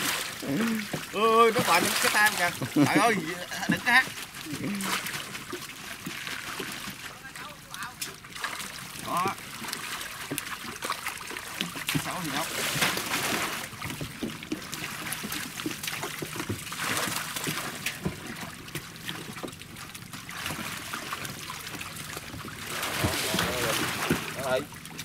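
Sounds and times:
dip net scooping through water: 0:00.0 - 0:07.2, 0:07.9 - 0:25.0
fish thrashing in water: 0:00.0 - 0:25.0
water splashing and sloshing: 0:00.0 - 0:25.0.

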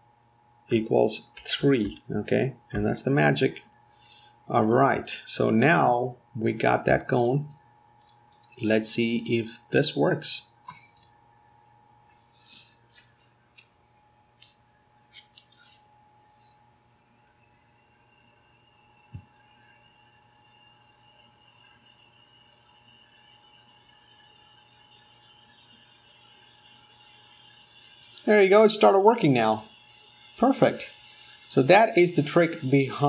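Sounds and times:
faint electrical hum: 0:00.0 - 0:33.0
soft hisses: 0:12.1 - 0:16.5.

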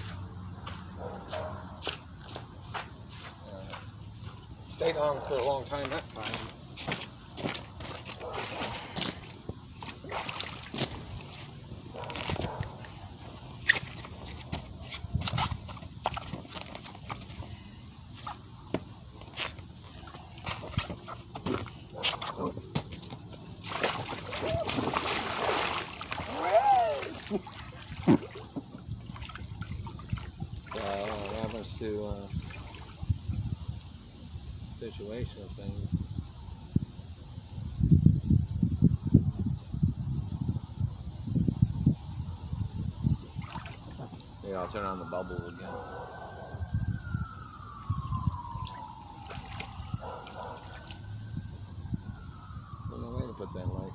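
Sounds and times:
water sloshing and splashing: 0:05.9 - 0:33.2, 0:43.3 - 0:44.4, 0:47.7 - 0:51.1.

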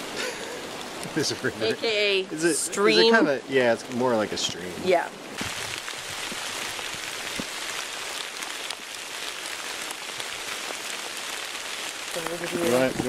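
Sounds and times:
rain falling on wet leaves: 0:00.0 - 0:13.0.

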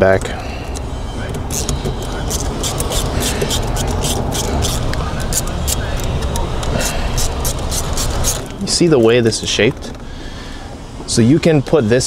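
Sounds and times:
low background rumble: 0:00.0 - 0:12.0
screwdriver turning a screw: 0:01.4 - 0:08.5.

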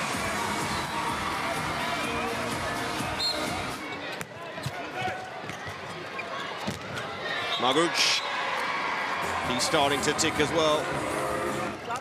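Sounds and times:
arena crowd noise: 0:00.0 - 0:12.0
handball bouncing on court: 0:06.6 - 0:07.1.

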